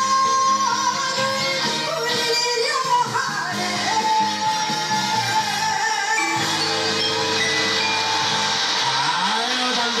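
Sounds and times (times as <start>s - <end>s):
live band music: 0.0s - 10.0s.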